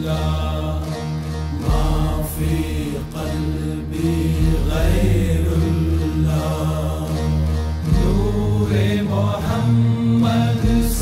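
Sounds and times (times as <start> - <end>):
deep bass drone: 0.0 - 11.0
voices chanting: 0.0 - 11.0.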